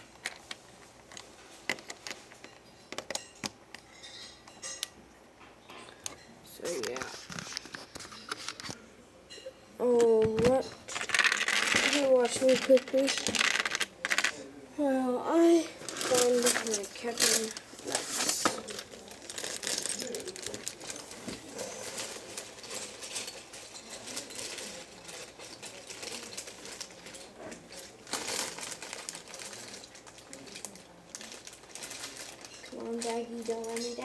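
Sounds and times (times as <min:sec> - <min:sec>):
rummaging through plastic pieces: 0:10.1 - 0:14.4, 0:15.3 - 0:34.0.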